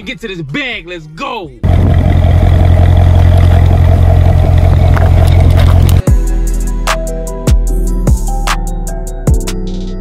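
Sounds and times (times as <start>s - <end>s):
car engine running loud: 1.6s - 6.0s
hip-hop music with deep bass: 5.5s - 10.0s.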